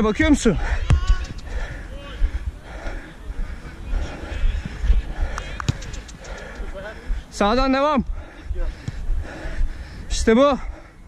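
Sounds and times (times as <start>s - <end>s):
wind buffeting microphone: 0.0s - 11.0s
running footfalls: 4.0s - 7.3s.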